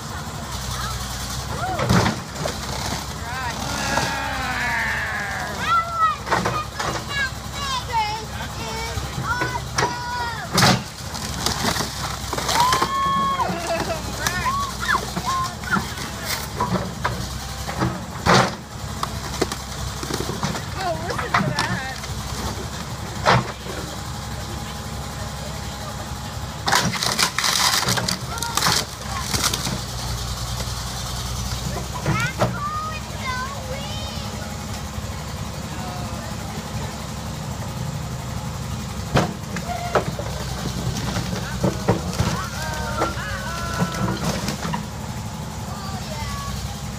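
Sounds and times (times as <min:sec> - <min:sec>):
onlookers calling out: 0:00.0 - 0:17.8, 0:18.8 - 0:46.9
backhoe engine running: 0:00.0 - 0:46.9.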